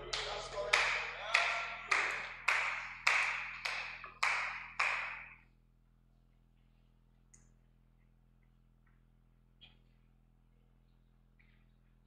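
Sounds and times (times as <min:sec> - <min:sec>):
hand claps in a hall: 0:00.0 - 0:05.4.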